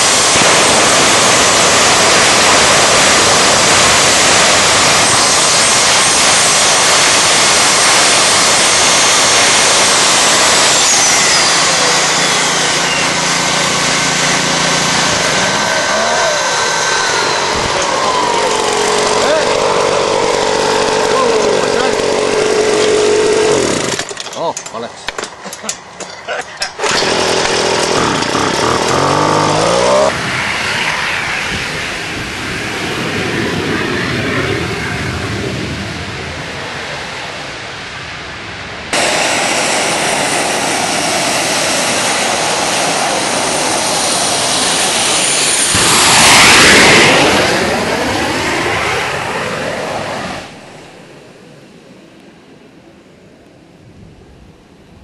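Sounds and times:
gas turbine engine whining and roaring: 0.0 - 55.0.

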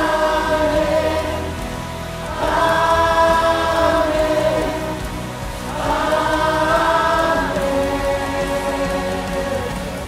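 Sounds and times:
mixed choir singing held notes: 0.0 - 10.0.

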